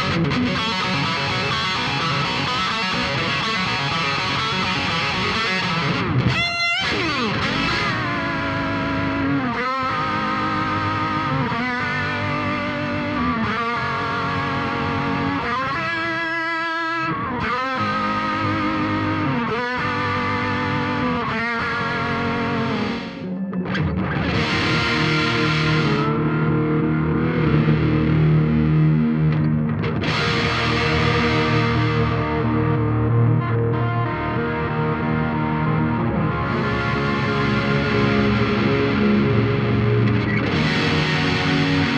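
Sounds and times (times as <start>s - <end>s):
distorted electric guitar low notes: 0.0s - 41.9s
electric guitar with modulated echoes: 0.0s - 41.9s.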